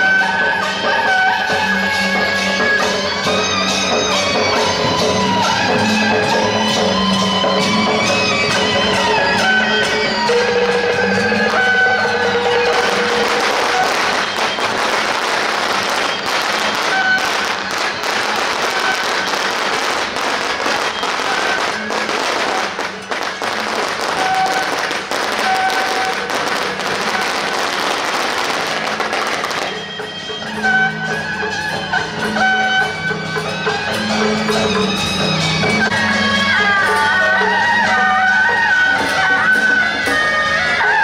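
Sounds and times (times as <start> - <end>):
traditional procession music: 0.0 - 41.0
firecrackers crackling rapidly: 10.2 - 30.0.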